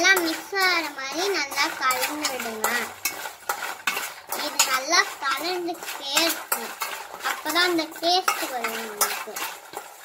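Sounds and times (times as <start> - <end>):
spoon scraping steel bowl: 0.0 - 10.0.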